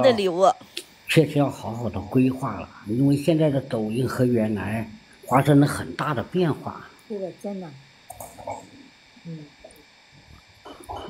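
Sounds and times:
woman talking: 0.0s - 0.6s, 7.1s - 7.8s.

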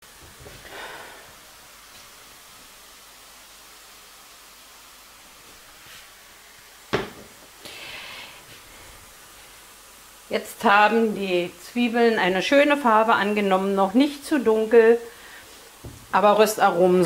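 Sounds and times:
onions frying hiss: 0.0s - 17.0s
frying pan knocking on hob: 6.9s - 7.4s.

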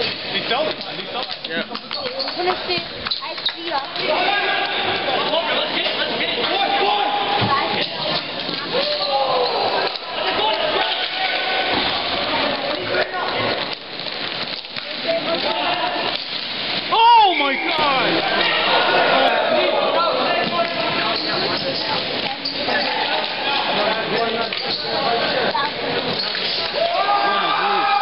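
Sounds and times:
people calling out: 6.4s - 13.6s, 16.8s - 24.8s, 25.5s - 28.0s.

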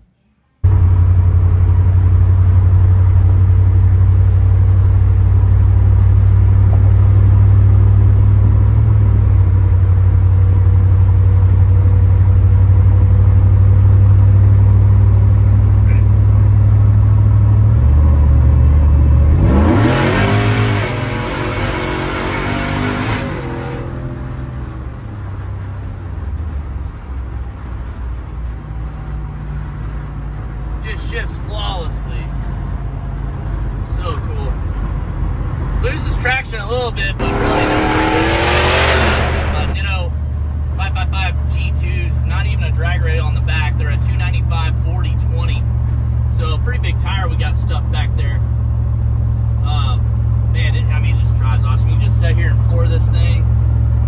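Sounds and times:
truck engine droning: 0.6s - 54.0s.

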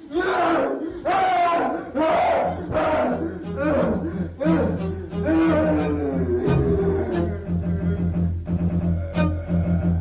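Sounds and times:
group shouting in unison: 0.0s - 7.5s
low steady drone: 2.3s - 10.0s.

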